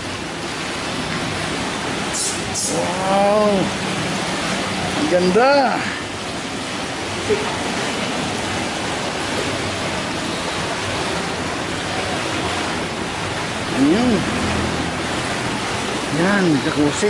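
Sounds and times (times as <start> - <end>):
fountain water pouring into pool: 0.0 - 17.0.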